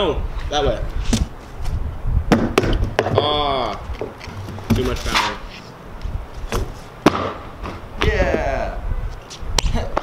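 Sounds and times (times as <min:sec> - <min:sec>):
rubber base knocking on concrete: 0:02.3 - 0:05.2, 0:06.5 - 0:08.4.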